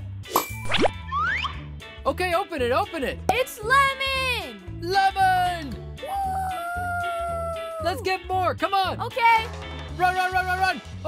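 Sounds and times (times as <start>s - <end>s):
children's background music: 0.2s - 11.0s.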